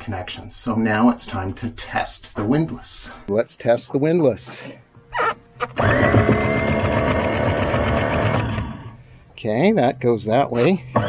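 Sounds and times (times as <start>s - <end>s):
electric windlass motor whining: 5.6s - 9.0s.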